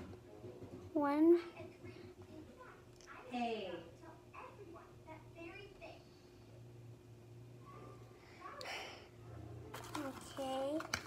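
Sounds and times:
faint low hum: 0:00.0 - 0:11.0
child speaking: 0:10.0 - 0:10.9.

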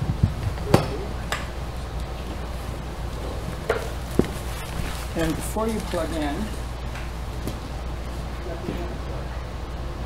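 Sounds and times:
steady low hum: 0:00.0 - 0:10.0
microphone handling knocks and clicks: 0:03.5 - 0:05.4.

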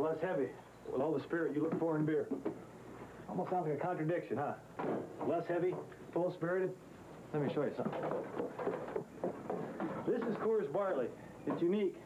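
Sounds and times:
footsteps on wooden boards: 0:07.8 - 0:10.6.

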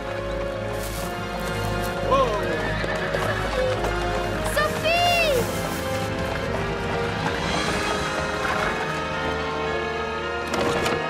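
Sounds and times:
background music: 0:00.0 - 0:11.0
horse hooves clip-clopping: 0:00.2 - 0:09.2.

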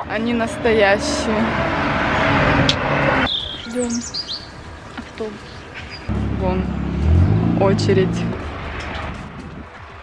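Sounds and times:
small bird chirping: 0:03.3 - 0:04.6.

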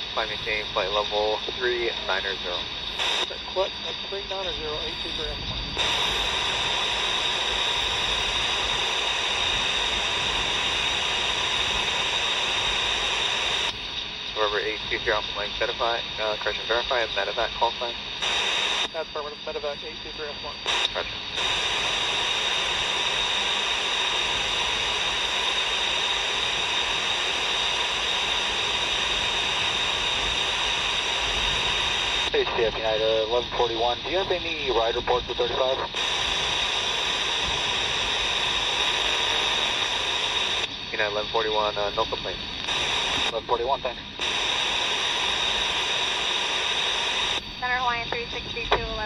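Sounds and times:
radio static hiss: 0:00.0 - 0:49.0.

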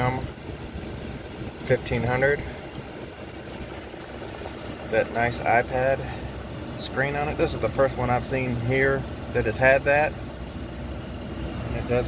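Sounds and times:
low hum in truck cab: 0:00.0 - 0:12.0.

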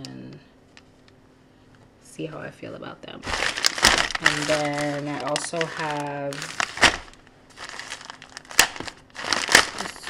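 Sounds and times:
plastic bag crinkling: 0:03.2 - 0:10.0
sharp plastic crackle: 0:03.2 - 0:10.0.

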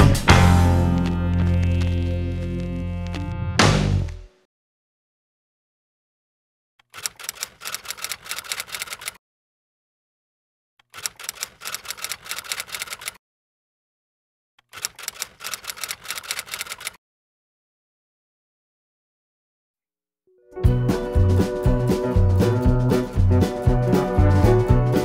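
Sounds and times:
rapid typewriter key clicks: 0:06.9 - 0:09.2, 0:10.8 - 0:13.2, 0:14.6 - 0:17.0.

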